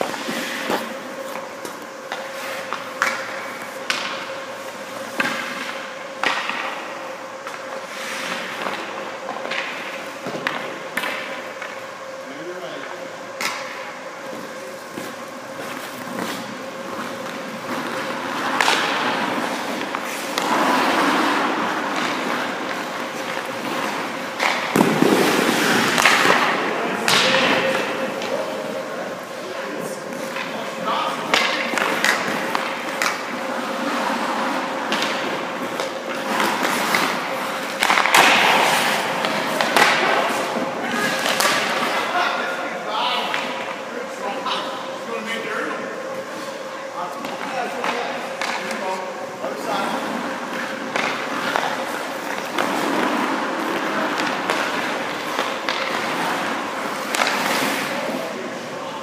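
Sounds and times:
skate blades scraping ice: 0.0 - 11.8, 14.3 - 26.8, 27.4 - 42.4, 49.5 - 58.8
stick and puck clacks: 0.0 - 11.8, 13.4 - 28.4, 30.1 - 42.1, 47.2 - 48.9, 49.7 - 58.4
pucks thudding on goalie pads: 0.0 - 11.9, 13.4 - 28.9, 29.8 - 44.6, 47.1 - 48.9, 49.5 - 59.0
steady hum: 0.0 - 59.0.

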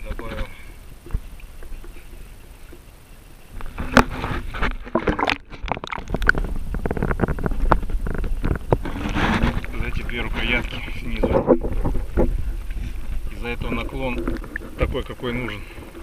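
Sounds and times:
water sloshing and splashing: 0.0 - 16.0.

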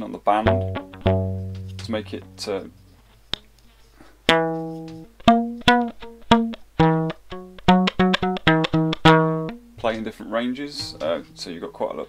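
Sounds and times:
plucked rubber band guitar notes: 0.0 - 3.2, 4.2 - 11.8.

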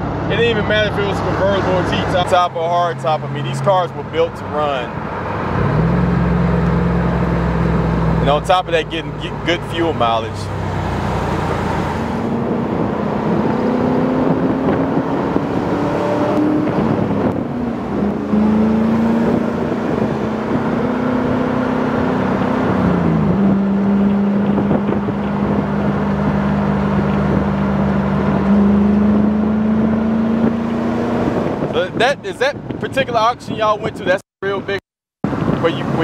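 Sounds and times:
car engine drone: 0.0 - 34.0
tyre and wind noise: 10.5 - 34.6.

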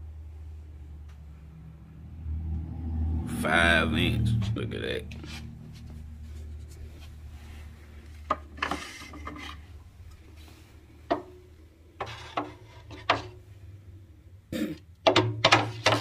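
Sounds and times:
plastic tubes rubbing and scraping: 5.1 - 11.2, 11.8 - 13.4, 15.1 - 16.0
sharp knocks of plastic tubes: 15.0 - 16.0.

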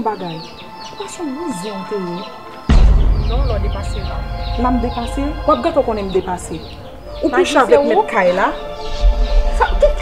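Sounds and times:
small birds chirping: 0.0 - 2.3.

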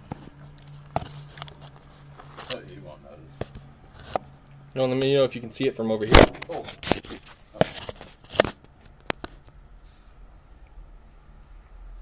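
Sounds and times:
steady low hum: 0.0 - 12.0
light rubbing on phone: 9.2 - 10.2.

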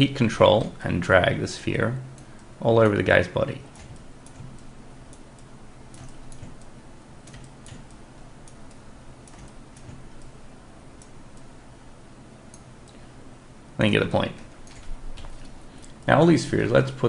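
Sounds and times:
faint low hum: 0.0 - 17.0
computer mouse clicking: 3.7 - 10.4, 11.0 - 11.5, 12.5 - 13.1, 14.6 - 16.2.

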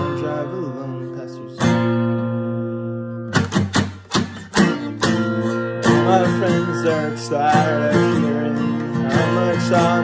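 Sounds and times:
person singing: 0.0 - 3.1, 4.6 - 10.0
acoustic guitar strumming: 0.0 - 10.0.

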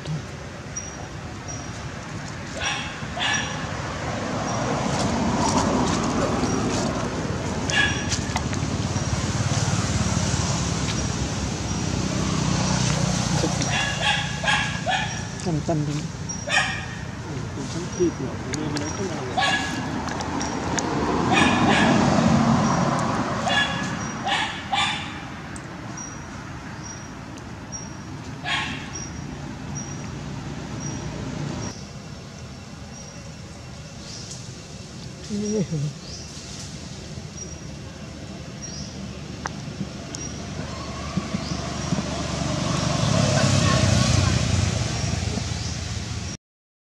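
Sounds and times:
vehicle passing: 2.4 - 27.8, 38.8 - 46.3.

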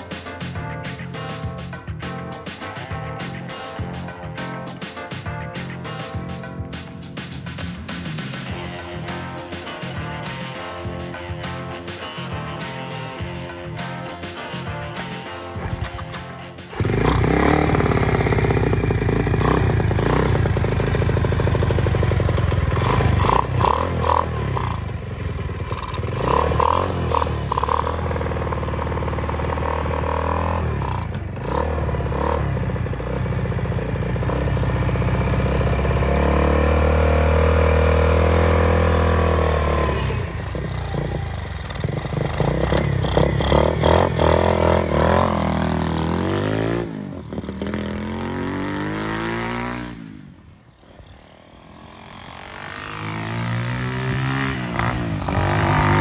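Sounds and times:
small motorcycle engine: 16.7 - 56.0.

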